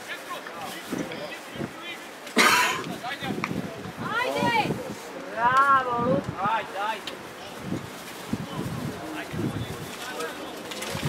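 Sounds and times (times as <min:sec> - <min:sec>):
loud short cough: 0:02.4 - 0:02.9.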